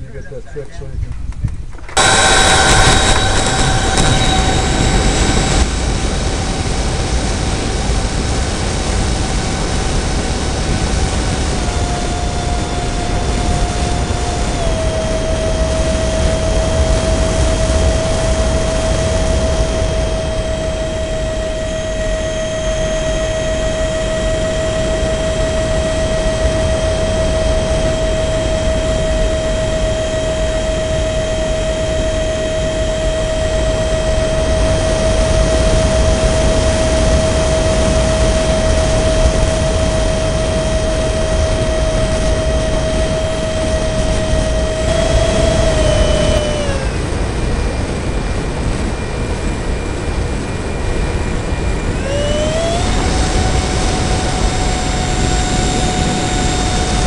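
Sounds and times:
rushing wind: 0.9s - 57.0s
low rumble: 1.0s - 57.0s
model jet engine whine: 1.6s - 57.0s.

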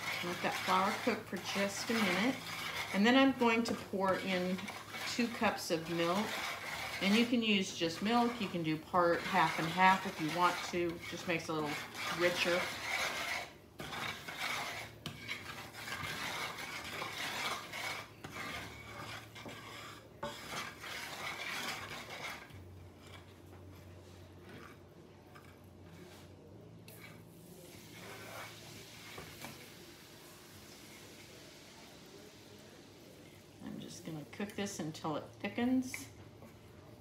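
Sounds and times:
wooden spatula scraping pan: 0.0s - 29.8s.

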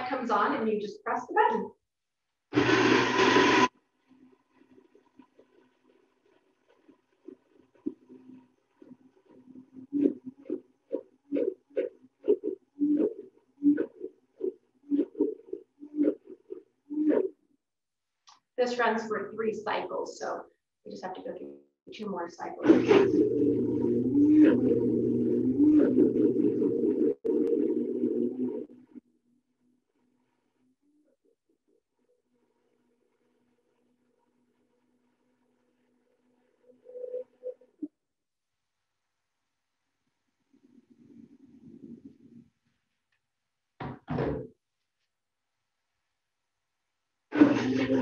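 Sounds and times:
blender motor and blades running: 2.5s - 3.7s, 22.6s - 28.7s.

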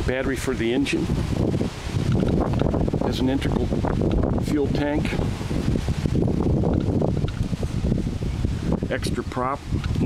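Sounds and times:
wind buffeting microphone: 0.0s - 10.0s
microphone handling bumps: 1.0s - 10.0s.

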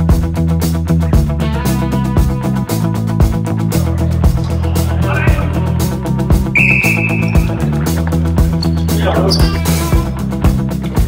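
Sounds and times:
background music with steady beat: 0.0s - 11.0s
referee's whistle: 6.5s - 7.6s.

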